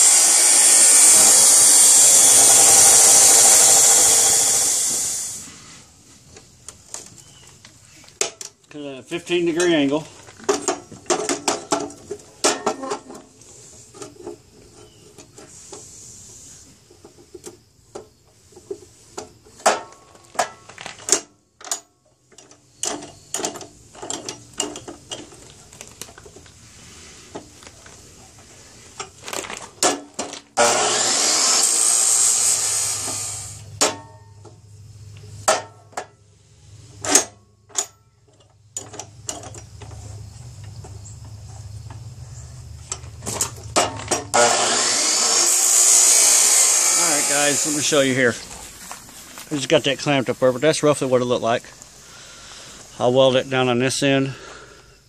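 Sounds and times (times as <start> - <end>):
chop saw grinding through tubing: 0.0 - 5.6, 30.6 - 33.7, 44.3 - 48.1.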